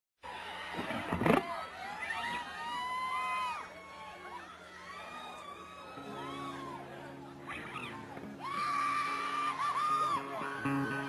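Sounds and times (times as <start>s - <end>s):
crowd screaming and whistling: 0.2s - 11.0s.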